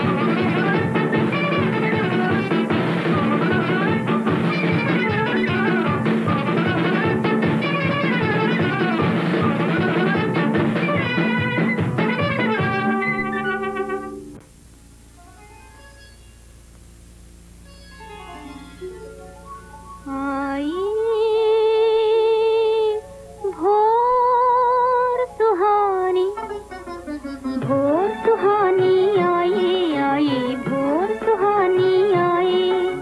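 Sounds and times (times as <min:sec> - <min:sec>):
orchestral music with drum beat: 0:00.0 - 0:14.2
woman singing with vibrato: 0:20.1 - 0:33.0.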